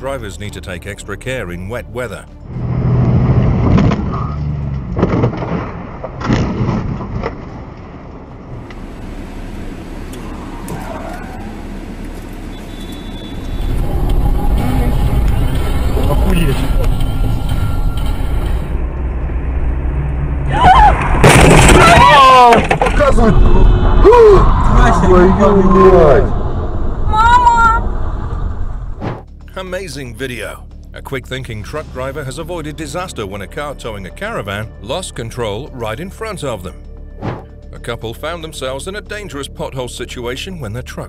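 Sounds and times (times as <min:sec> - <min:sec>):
engine and road rumble: 0:00.0 - 0:41.0
vehicle collision thuds: 0:21.1 - 0:23.2.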